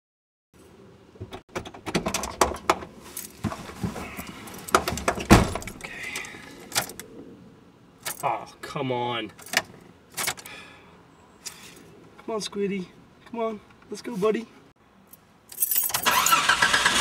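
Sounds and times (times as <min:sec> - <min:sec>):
knocks and rustling: 0:01.2 - 0:05.8
car keys jangling: 0:15.5 - 0:16.6.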